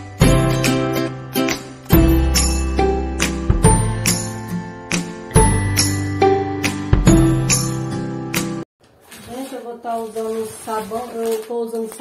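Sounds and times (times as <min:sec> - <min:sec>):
woman speaking: 0:09.2 - 0:12.0.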